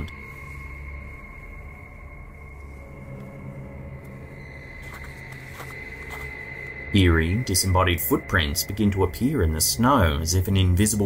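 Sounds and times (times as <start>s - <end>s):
eerie drone music: 0.0s - 11.0s.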